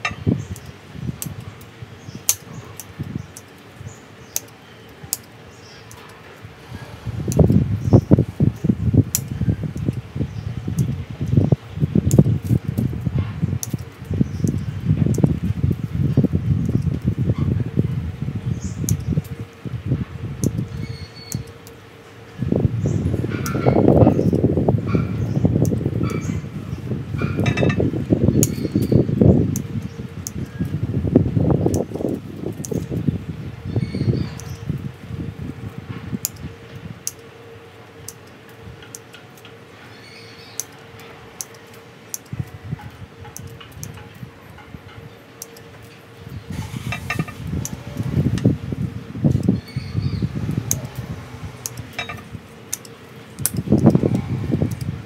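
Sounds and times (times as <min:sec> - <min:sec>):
pruning shears clicking: 0:07.3 - 0:11.4, 0:40.5 - 0:48.5, 0:50.4 - 0:55.0
light clicks: 0:40.5 - 0:46.0
ceramic pot scraping: 0:46.5 - 0:47.4.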